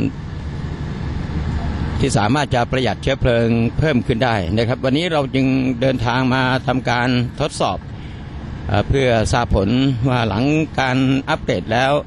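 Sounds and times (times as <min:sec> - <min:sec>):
engine hum: 0:00.0 - 0:12.0
road noise inside car: 0:00.0 - 0:12.0.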